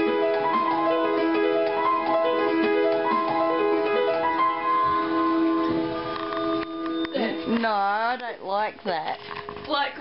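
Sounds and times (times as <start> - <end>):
piano chord: 0.0 - 8.2.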